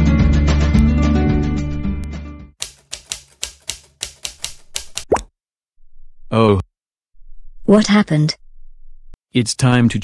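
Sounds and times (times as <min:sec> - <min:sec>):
background music: 0:00.0 - 0:04.6
keyboard typing clicks: 0:02.6 - 0:05.2.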